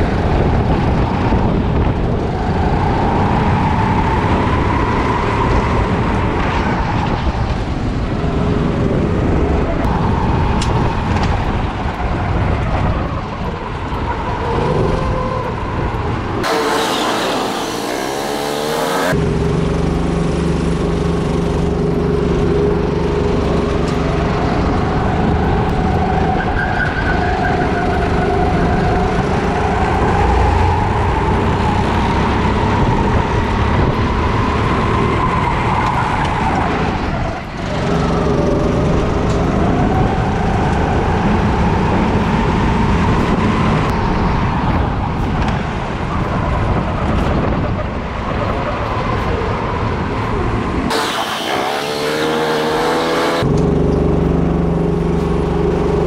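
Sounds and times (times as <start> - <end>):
wind noise: 0.0 - 56.0
kart engine revving: 14.1 - 43.9, 49.0 - 56.0.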